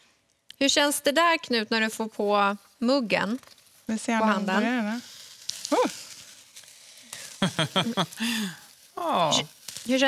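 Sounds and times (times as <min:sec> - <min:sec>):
sparkler fizzing and crackling: 0:00.6 - 0:10.0.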